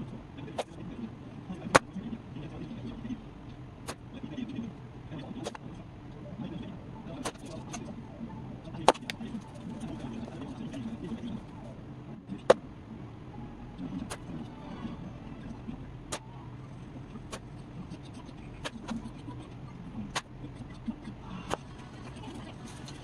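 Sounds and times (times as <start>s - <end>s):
low background murmur: 0.0s - 23.0s.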